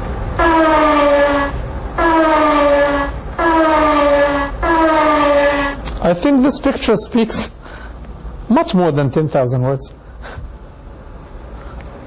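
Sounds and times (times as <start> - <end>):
steady low rumble: 0.0 - 12.0
train horn blasts: 0.4 - 5.8.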